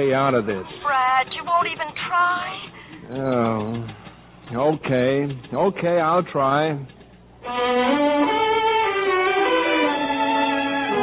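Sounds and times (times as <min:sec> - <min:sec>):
orchestral music with held chords: 0:07.4 - 0:11.0.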